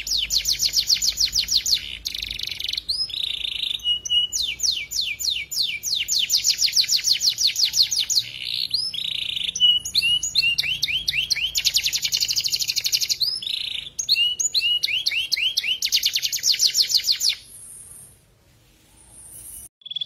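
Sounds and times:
canary singing trills: 0.0s - 18.2s, 19.0s - 20.0s.

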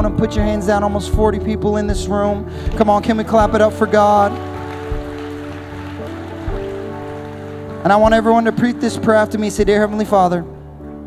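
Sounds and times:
live band holding chords: 0.0s - 11.0s.

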